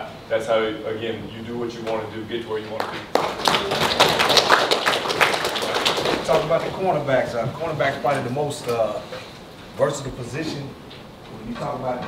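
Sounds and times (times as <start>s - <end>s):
people applauding: 2.7s - 6.9s.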